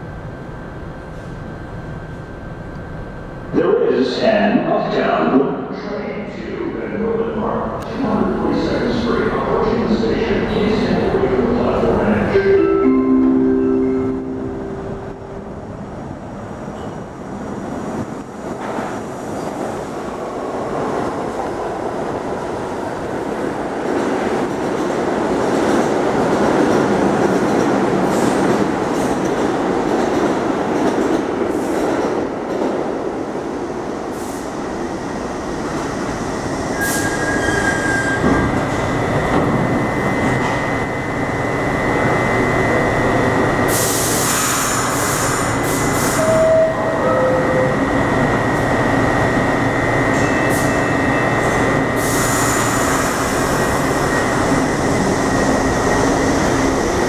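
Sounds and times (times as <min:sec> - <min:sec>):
subway train rumbling: 0:00.0 - 0:57.0
high-pitched brake squeal: 0:36.7 - 0:38.6, 0:44.3 - 0:47.8.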